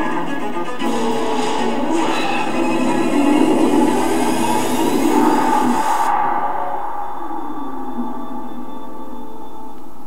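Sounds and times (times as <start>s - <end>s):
sustained music tones: 0.0s - 10.0s
dense rushing roar: 0.8s - 9.3s.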